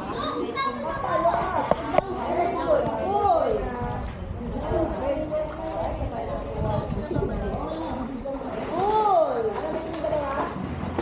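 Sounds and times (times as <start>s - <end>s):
children calling and chattering: 0.0s - 10.8s.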